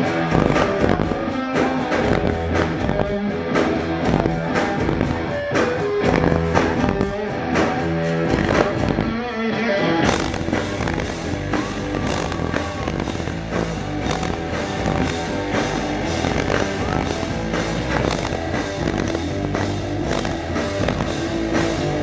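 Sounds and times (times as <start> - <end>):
bass guitar: 0.0 - 22.0
drums: 0.0 - 22.0
electric guitar riff: 0.0 - 22.0.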